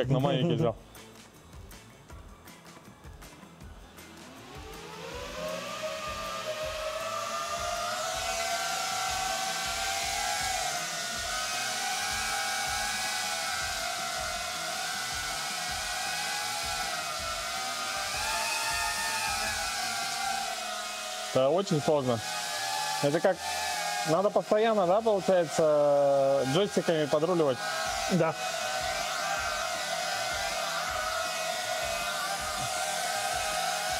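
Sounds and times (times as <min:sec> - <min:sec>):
drone motors whining: 0:03.6 - 0:33.9.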